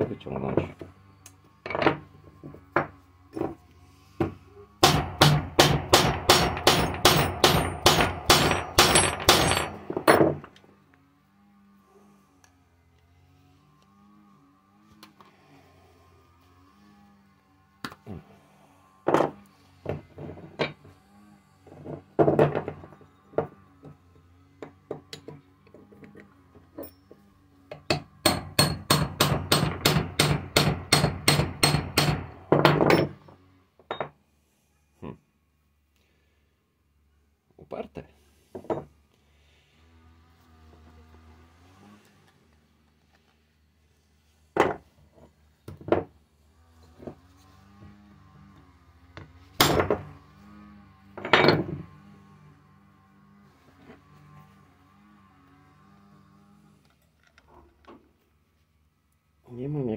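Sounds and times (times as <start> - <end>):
hammer striking metal punch: 4.8 - 10.4, 27.9 - 33.2.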